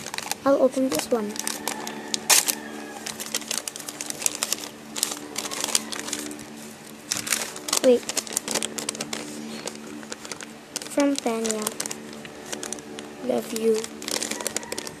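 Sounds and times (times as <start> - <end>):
paper rustling: 0.0 - 15.0
plastic bag crinkling: 0.0 - 15.0
low hum: 1.2 - 15.0.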